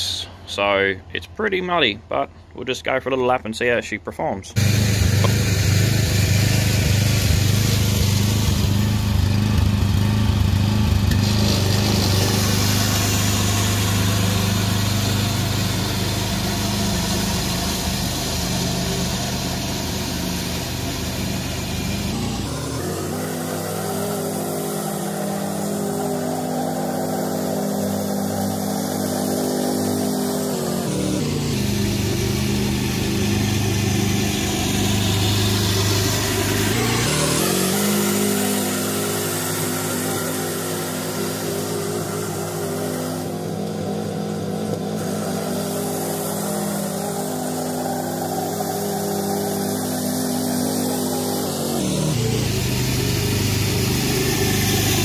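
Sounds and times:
riding mower engine running: 0:04.6 - 0:55.0.

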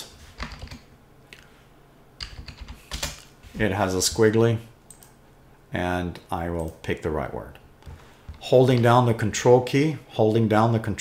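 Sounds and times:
computer keyboard typing: 0:00.4 - 0:00.9, 0:02.2 - 0:03.2, 0:04.9 - 0:05.2.

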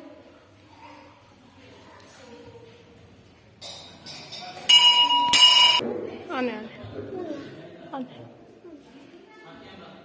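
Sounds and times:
temple bell ringing: 0:04.7 - 0:05.8.

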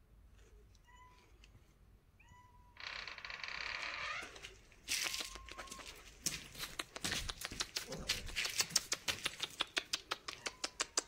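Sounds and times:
rustling scuffling noise: 0:04.2 - 0:09.4.

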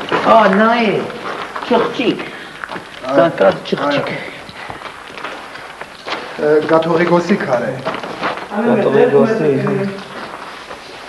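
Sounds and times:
background noise: 0:00.0 - 0:11.0
man speaking: 0:03.0 - 0:04.4, 0:08.6 - 0:10.0.

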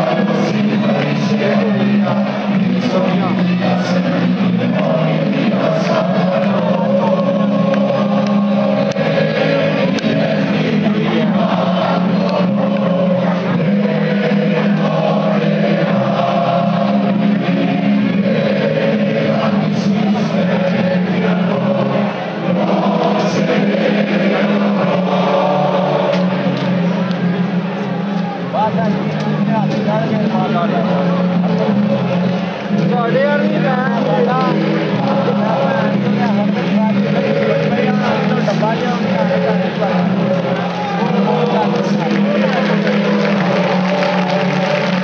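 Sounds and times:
metal band playing with singing: 0:00.0 - 0:45.0.

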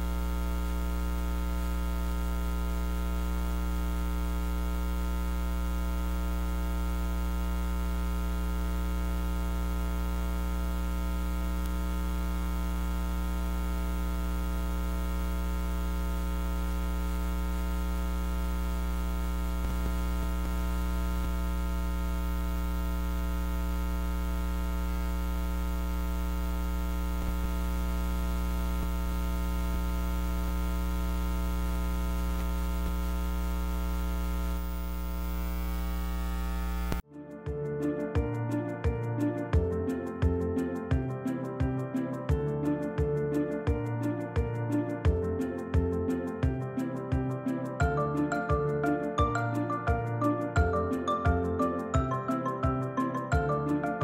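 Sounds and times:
electrical mains hum: 0:00.0 - 0:37.0.

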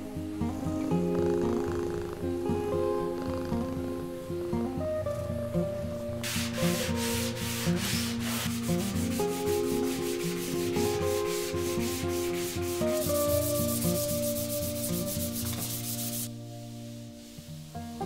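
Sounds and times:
sandpaper rubbing on plywood: 0:06.2 - 0:16.3.

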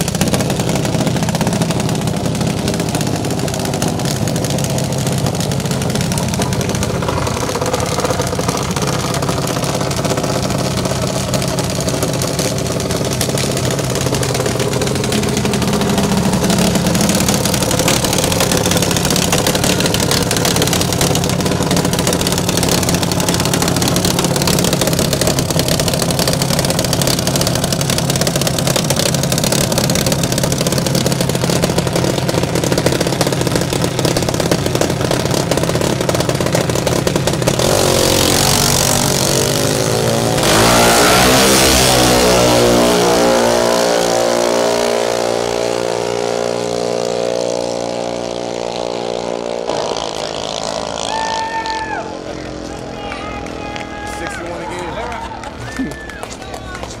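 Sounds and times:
dragster engine idling and revving: 0:00.0 - 0:57.0.

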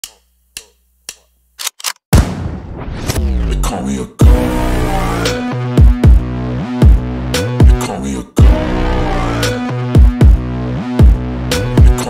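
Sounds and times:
electronic music: 0:03.1 - 0:12.0.

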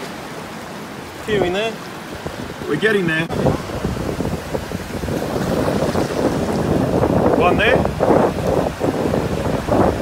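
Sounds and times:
wave washing up sand: 0:00.0 - 0:10.0
wind buffeting microphone: 0:01.2 - 0:10.0.

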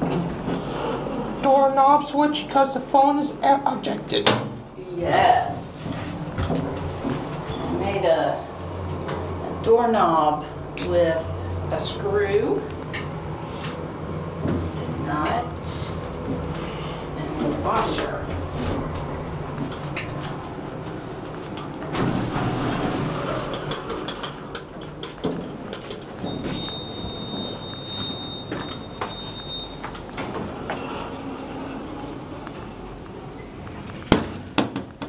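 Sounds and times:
high electronic beep: 0:26.2 - 0:29.9.

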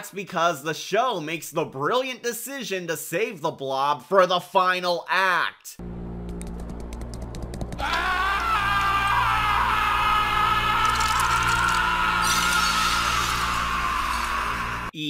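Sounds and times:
low steady drone: 0:05.8 - 0:13.4
cartoon character screaming: 0:07.8 - 0:14.9.

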